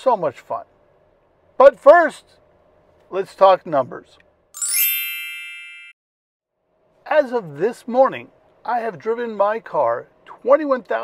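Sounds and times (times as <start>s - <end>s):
bright chime: 4.6s - 6.0s.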